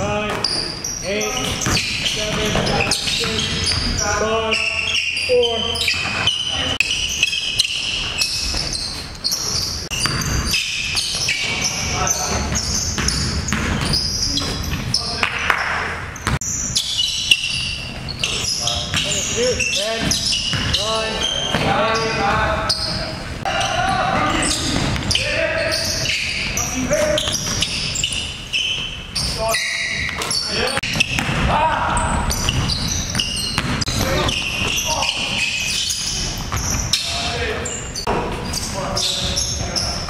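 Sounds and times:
basketball bouncing on court: 0.0s - 37.2s
players calling out: 0.0s - 40.0s.

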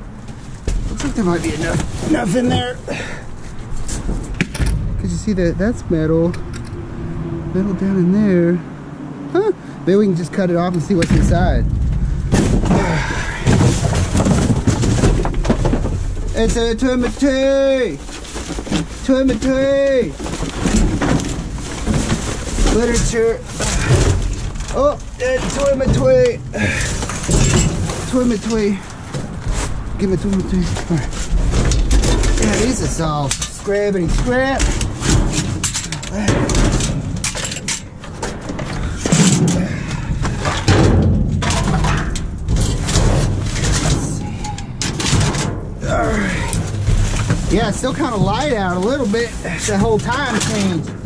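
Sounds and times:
paper and cardboard rustling: 0.2s - 4.4s, 10.9s - 51.0s
heavy thumps and knocks: 10.9s - 33.1s, 38.1s - 51.0s.

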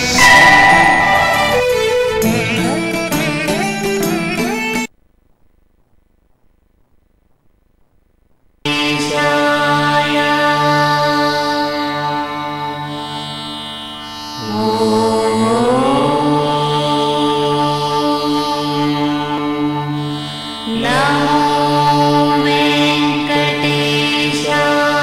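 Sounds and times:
steady drone: 0.0s - 3.4s
person singing devotional chant: 8.7s - 13.4s, 14.2s - 25.0s.

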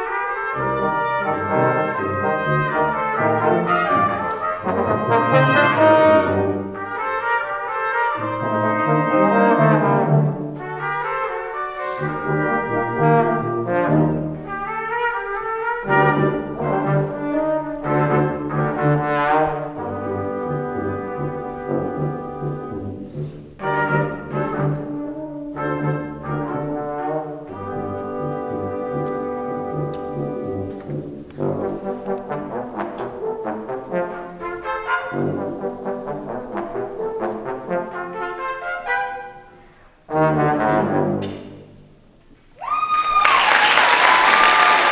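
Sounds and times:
brass quintet playing tango: 0.0s - 42.0s
audience applause: 42.6s - 44.9s
held cheer: 42.6s - 44.9s.

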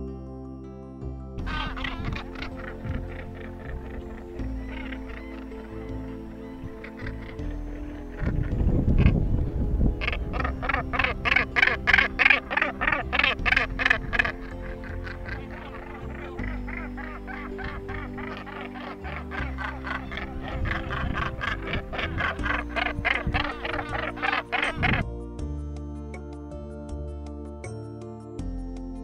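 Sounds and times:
soft background music: 0.0s - 29.0s
gannets harsh calls: 1.4s - 9.2s, 10.0s - 25.0s.

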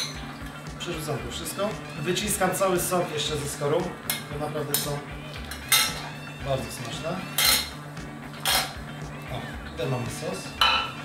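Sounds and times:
metal cookware clanking: 0.0s - 0.2s, 4.0s - 6.1s, 7.3s - 7.8s, 8.4s - 8.8s, 10.6s - 11.0s.

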